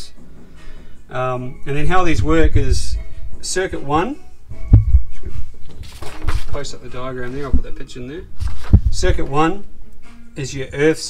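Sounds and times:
dull low thumps: 1.8s - 5.8s, 7.2s - 9.9s
paper rustling: 5.6s - 9.3s.

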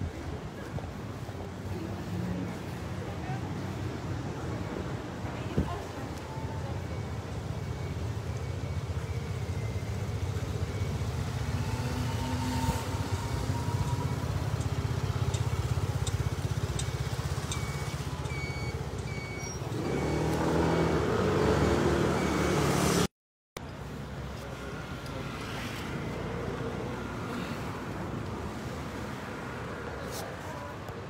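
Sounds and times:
motor scooter engines rumbling: 0.0s - 31.0s
short electronic beeps: 6.4s - 22.8s.

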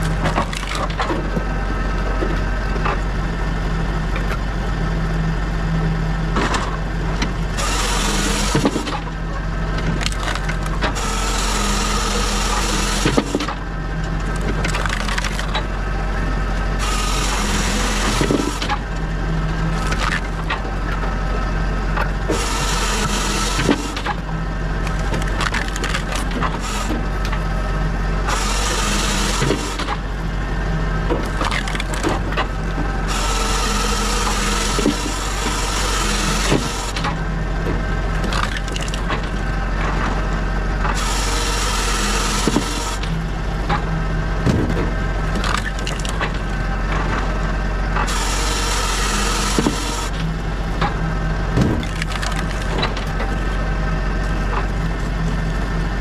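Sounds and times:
split wood pieces clattering: 0.0s - 1.4s, 9.8s - 11.0s, 14.2s - 15.7s, 19.8s - 20.8s, 24.8s - 27.4s, 31.1s - 32.5s, 38.2s - 39.9s, 44.5s - 47.2s, 51.6s - 53.5s
wood splitting and tumbling: 0.0s - 3.1s, 6.3s - 56.0s
firewood processor droning: 0.0s - 56.0s
saw cutting through log: 7.4s - 55.5s.

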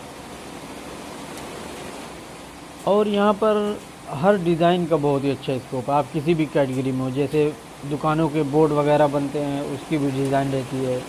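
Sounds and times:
room noise hiss and hum: 0.0s - 11.0s.

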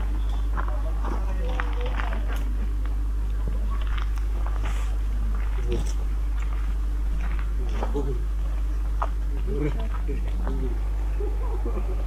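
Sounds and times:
footsteps on rocky path: 0.0s - 10.8s
people talking quietly: 0.0s - 12.0s
steady low rumble: 0.0s - 12.0s.

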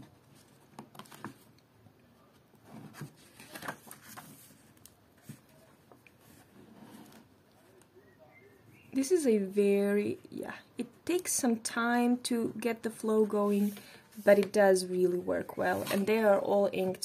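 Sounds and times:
notebook pages turning: 2.9s - 5.4s.

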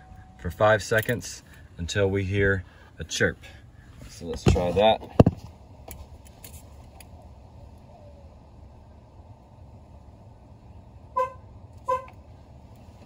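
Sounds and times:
car horn chirping: 11.1s - 12.2s.

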